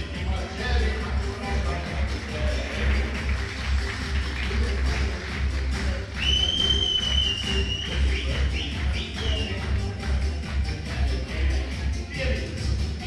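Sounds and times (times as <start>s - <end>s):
live dance music with heavy bass: 0.0s - 13.0s
loud high whistle: 6.2s - 9.6s.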